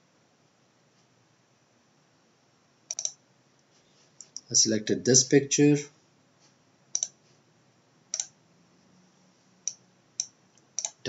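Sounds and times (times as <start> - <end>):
computer mouse clicking: 2.9 - 3.2, 6.9 - 7.2, 8.1 - 8.4, 9.6 - 11.0.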